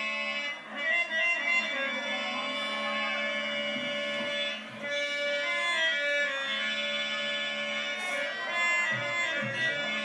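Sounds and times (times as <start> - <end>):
harmonium sustained notes: 0.0 - 10.0.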